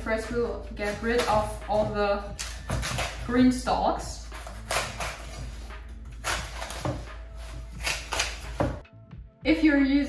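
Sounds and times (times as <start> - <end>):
knife cutting on wooden board: 0.8 - 3.3, 4.2 - 8.8.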